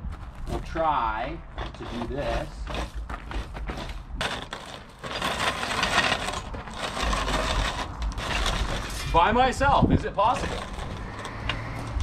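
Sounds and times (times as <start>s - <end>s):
gravel crunching under wheels: 0.0s - 12.0s
small clicks and scrapes: 1.6s - 9.2s, 10.3s - 12.0s.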